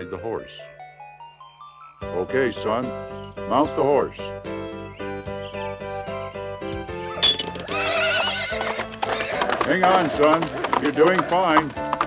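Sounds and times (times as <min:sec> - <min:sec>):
background music: 0:00.0 - 0:12.0
horse whinnying: 0:05.1 - 0:12.0.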